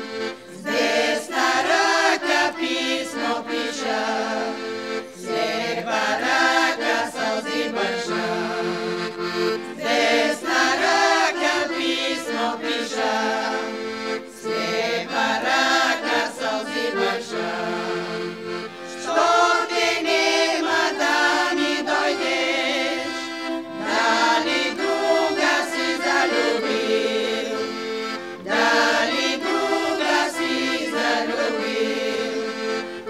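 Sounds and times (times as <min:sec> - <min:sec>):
accordion: 0:00.0 - 0:33.0
women singing together: 0:00.1 - 0:33.0.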